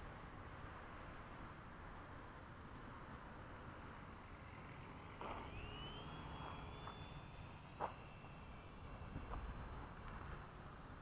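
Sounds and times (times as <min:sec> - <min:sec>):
model plane motor whine: 0:04.0 - 0:11.0.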